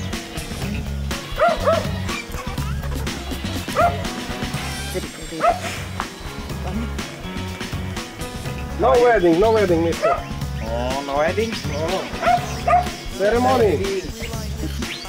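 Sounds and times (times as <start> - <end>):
background music: 0.0 - 15.0
dog yipping: 1.3 - 2.7, 3.7 - 4.1, 5.4 - 5.8, 9.9 - 10.4, 12.1 - 13.1.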